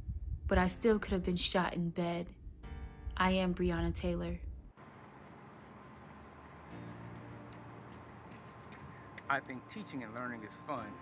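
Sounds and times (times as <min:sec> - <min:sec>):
footsteps jogging on concrete: 0:05.8 - 0:09.3.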